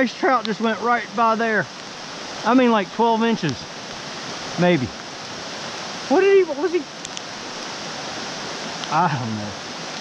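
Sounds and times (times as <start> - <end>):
stream rushing over rocks: 0.0 - 10.0.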